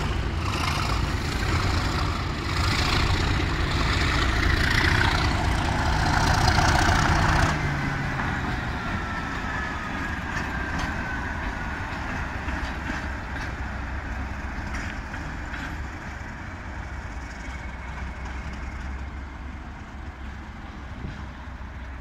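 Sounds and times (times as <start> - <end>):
diesel engine rumble: 0.0 - 22.0
train wheel noise: 0.0 - 22.0.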